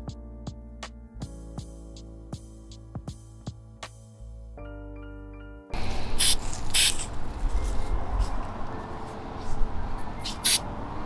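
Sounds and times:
background music with held tones: 0.0 - 6.1, 7.4 - 11.0.

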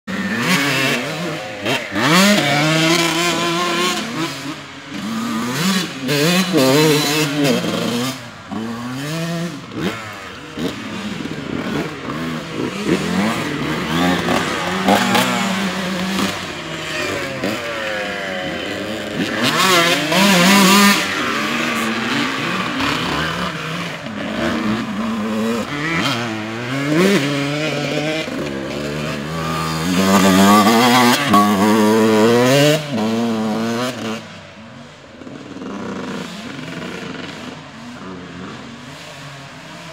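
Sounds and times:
dirt bike engines revving: 0.0 - 39.9.

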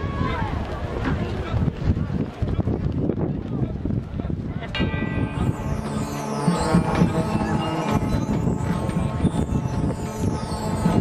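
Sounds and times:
crowd chatter: 0.0 - 11.0
ringing bell-like tones: 4.7 - 11.0.

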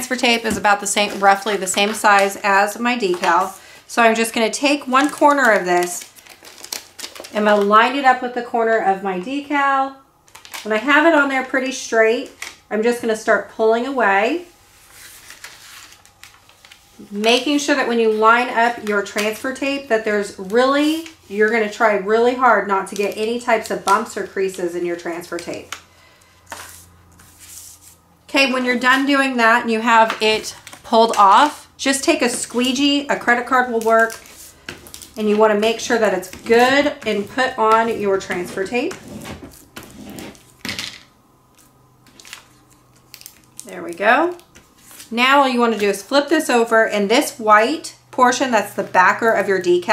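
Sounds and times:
paper crinkling rustle: 0.1 - 7.7, 14.7 - 21.7, 32.2 - 40.7, 41.6 - 46.0
squeegee scraping over tape: 33.6 - 40.5.

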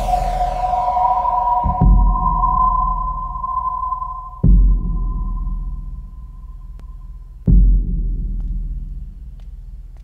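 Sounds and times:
high ping-like drone tone: 0.0 - 7.2
low rumble: 0.0 - 7.4
deep bass boom: 0.0 - 8.0.

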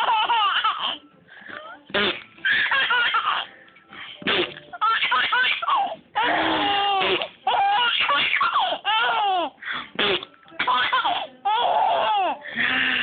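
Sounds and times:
baby laughing: 0.0 - 1.0, 2.4 - 3.5, 4.4 - 13.0.

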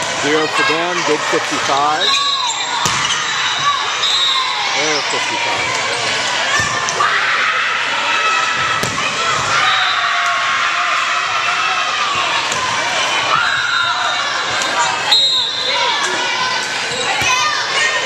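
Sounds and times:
crowd murmur: 0.0 - 18.0
players and spectators shouting: 0.0 - 18.0
volleyball being hit: 2.8 - 3.1, 8.7 - 9.2.

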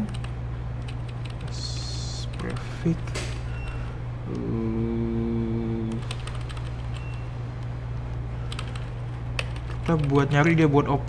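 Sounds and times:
steady low hum: 0.0 - 11.0
man humming: 1.5 - 3.0, 4.2 - 6.1
keyboard keys clicking: 5.9 - 7.2, 8.5 - 10.6.

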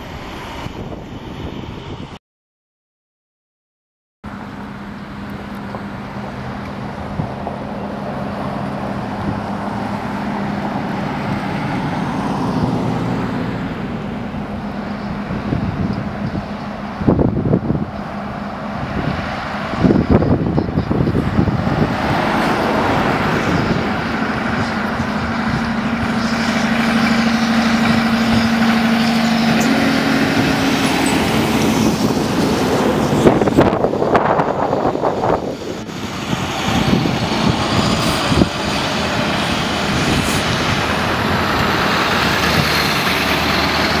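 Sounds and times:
diesel truck engine under load: 4.3 - 44.0
tyre and road noise: 4.3 - 44.0
vehicles passing: 4.3 - 44.0.

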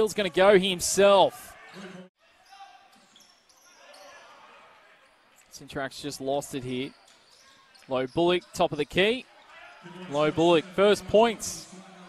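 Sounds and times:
shoes squeaking on court: 1.6 - 5.7, 6.6 - 10.1.

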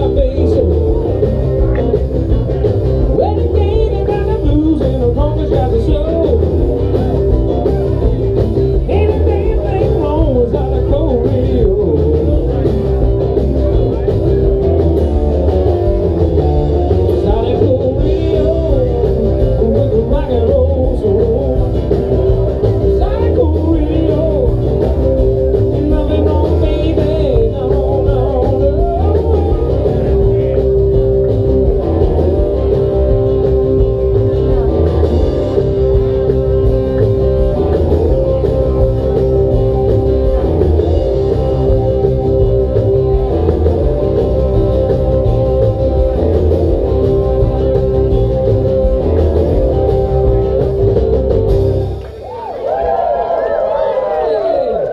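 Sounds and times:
person singing: 0.0 - 7.7, 8.8 - 13.0, 16.4 - 30.7
live band with guitar: 0.0 - 54.9.

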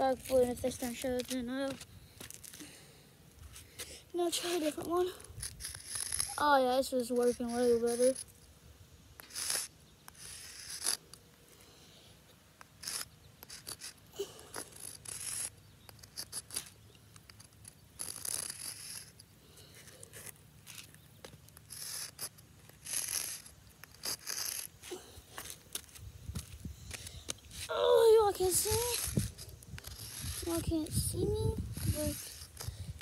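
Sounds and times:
chalk scraping on hard ground: 0.0 - 2.6, 3.4 - 8.3, 9.2 - 11.6, 12.6 - 33.0.

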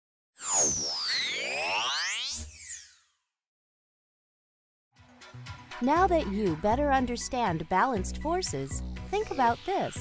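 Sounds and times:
swirl of gliding electronic tones: 0.4 - 3.0.

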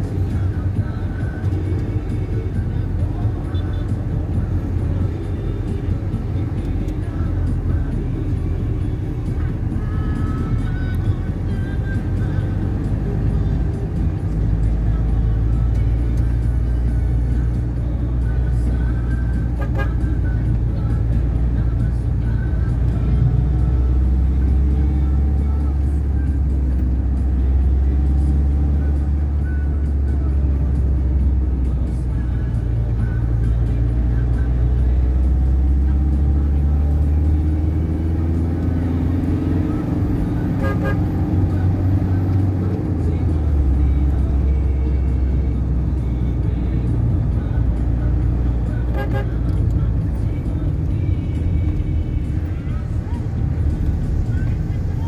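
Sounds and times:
engine and road rumble in cabin: 0.0 - 55.0
car horn: 19.5 - 20.2, 40.4 - 41.2, 48.8 - 49.6.

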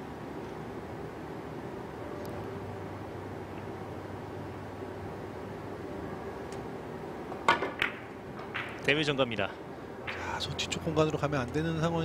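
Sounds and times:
cue tip tapping ball: 7.3 - 8.9
billiard balls clicking: 7.4 - 9.0.

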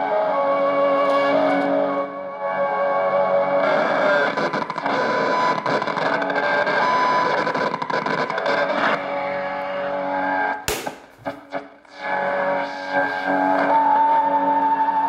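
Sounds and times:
music from radio speaker: 0.0 - 10.6, 11.3 - 15.0
sharp crackle: 10.7 - 11.6.

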